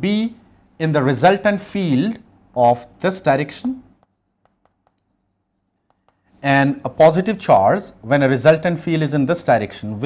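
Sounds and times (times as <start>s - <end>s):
chalk scratching on chalkboard: 4.0s - 6.3s.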